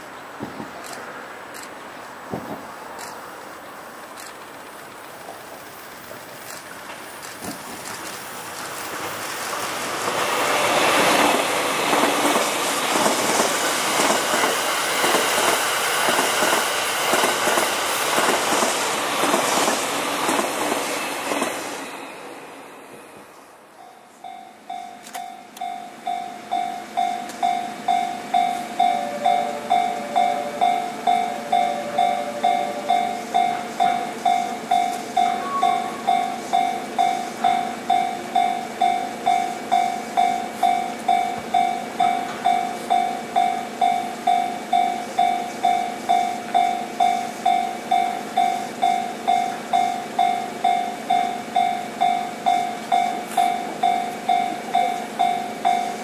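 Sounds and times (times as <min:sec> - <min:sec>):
level crossing alarm ringing: 0:23.8 - 0:56.0.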